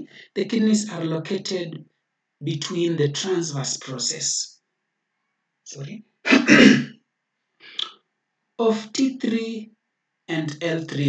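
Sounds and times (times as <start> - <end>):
man clearing his throat: 6.3 - 6.9.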